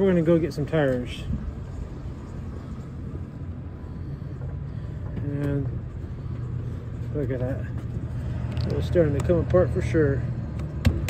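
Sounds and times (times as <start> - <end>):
road vehicle rumble: 0.0 - 11.0.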